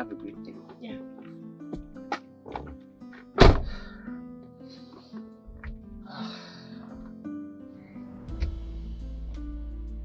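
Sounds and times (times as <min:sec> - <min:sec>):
soft background music: 0:00.0 - 0:10.0
car door shutting: 0:03.4 - 0:03.8.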